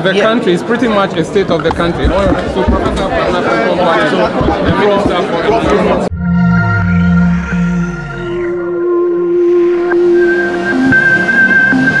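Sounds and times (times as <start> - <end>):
short low electronic notes: 6.0 - 11.3
electronic music high tone: 6.1 - 12.0.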